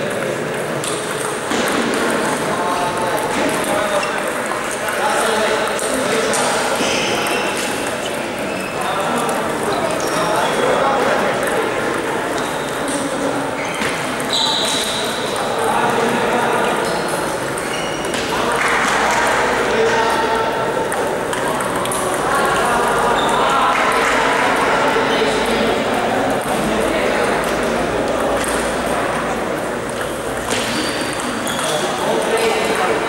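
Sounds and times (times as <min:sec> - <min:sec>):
murmur of chatter: 0:00.0 - 0:33.0
table tennis balls ticking: 0:00.0 - 0:33.0
table tennis ball clicking: 0:20.8 - 0:23.0.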